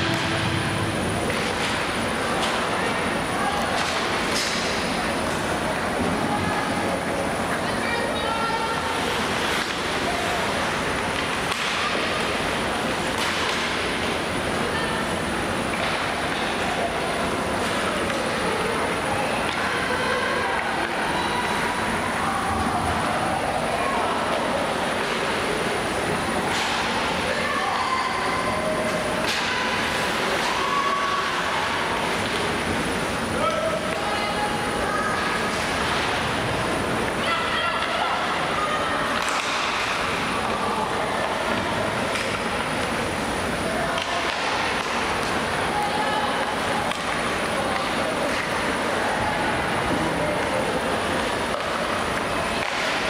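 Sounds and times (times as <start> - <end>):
players shouting: 26.0 - 42.6.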